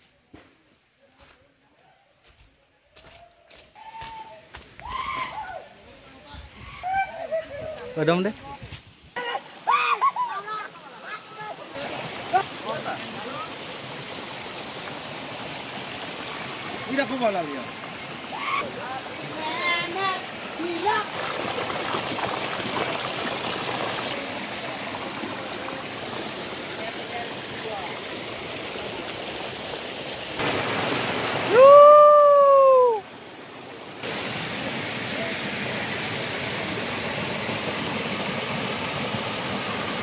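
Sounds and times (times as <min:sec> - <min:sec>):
stream rushing over rocks: 0:07.1 - 0:40.0.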